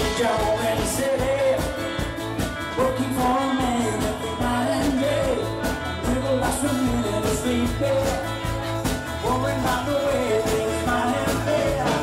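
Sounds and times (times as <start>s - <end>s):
person singing: 0.0s - 2.0s, 2.7s - 12.0s
drum beat: 0.0s - 12.0s
live rock band: 0.0s - 12.0s.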